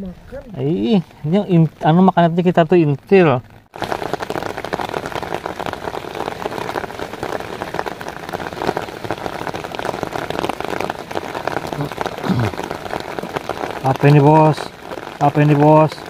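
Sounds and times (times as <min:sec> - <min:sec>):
heavy rain falling: 0:00.0 - 0:16.0.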